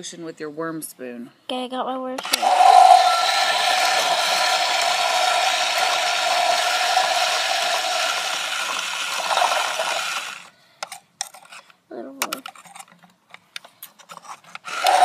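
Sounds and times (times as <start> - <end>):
small motor whirring: 2.2 - 10.5, 14.6 - 15.0
water swirling in toy toilet: 2.2 - 10.5, 14.7 - 15.0.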